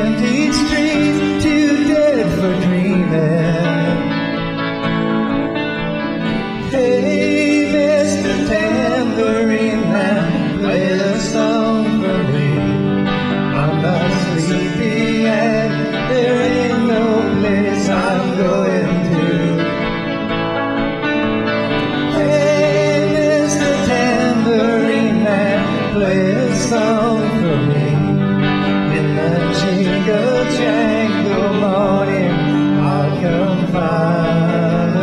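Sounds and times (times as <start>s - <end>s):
men singing into microphones: 0.0s - 4.2s, 6.4s - 20.1s, 21.9s - 35.0s
electric guitars strummed: 0.0s - 35.0s.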